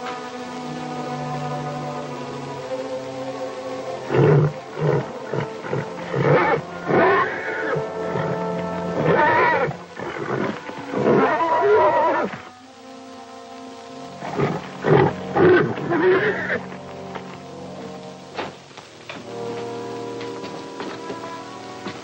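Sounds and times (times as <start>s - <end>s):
background music: 0.0s - 22.0s
horse neighing and squealing: 4.1s - 12.4s, 14.2s - 16.7s.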